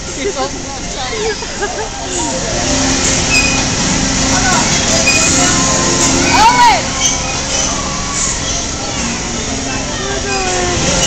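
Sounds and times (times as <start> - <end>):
mechanical ride hum and rumble: 0.0 - 11.0
faint voices: 0.1 - 11.0.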